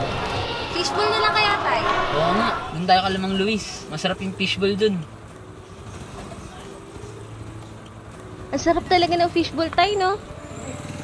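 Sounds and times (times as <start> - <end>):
traffic hum: 0.0 - 11.0.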